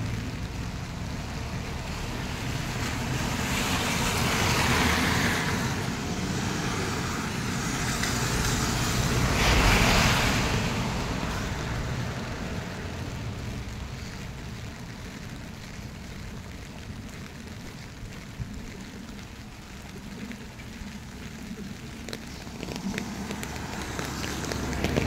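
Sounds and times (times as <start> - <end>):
low traffic rumble: 0.0 - 25.0
tyres hissing on wet road: 0.0 - 25.0.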